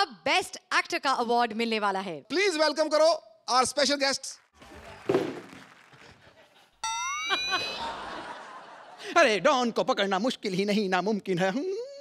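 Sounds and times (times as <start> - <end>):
studio audience laughter: 6.0 - 9.8.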